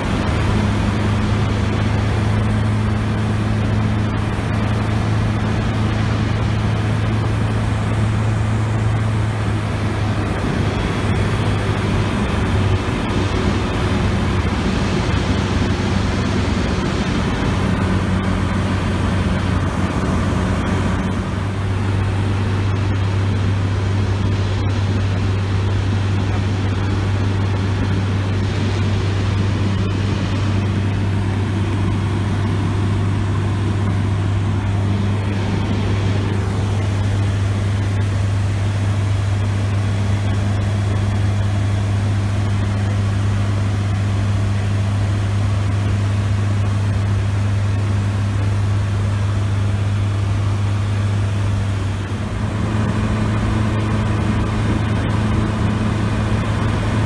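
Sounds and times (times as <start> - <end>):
aircraft engine drone: 0.0 - 57.0.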